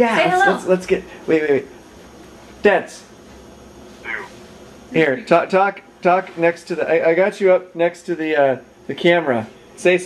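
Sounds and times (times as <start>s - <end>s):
short high-pitched vocal sound: 4.0s - 4.4s.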